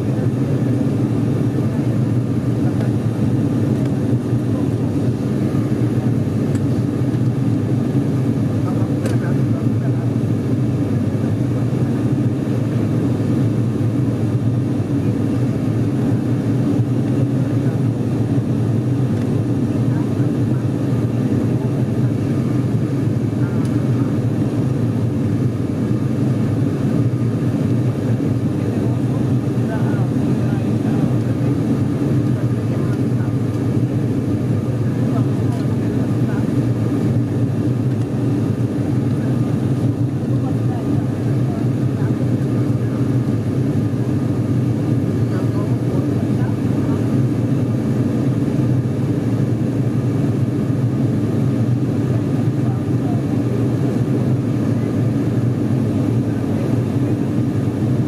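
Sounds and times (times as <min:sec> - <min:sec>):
propeller plane cabin drone: 0:00.0 - 0:58.0.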